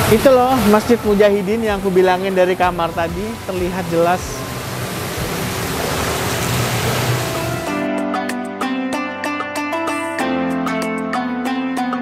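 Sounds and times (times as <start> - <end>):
loud steady rushing noise: 0.0 - 7.8.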